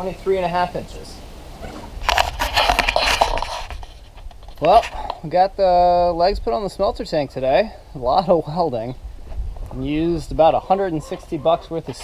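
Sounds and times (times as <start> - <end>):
rustling crackling noise: 1.5 - 5.6, 8.8 - 12.0.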